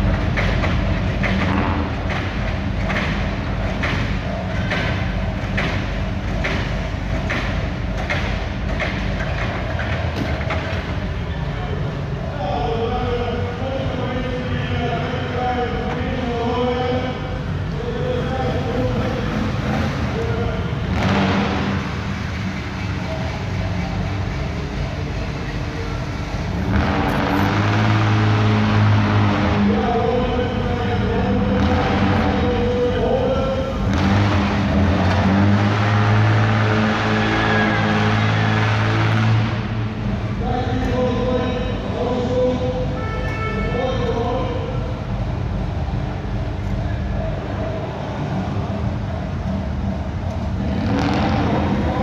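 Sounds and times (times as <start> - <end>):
car engines driving: 0.0 - 52.0.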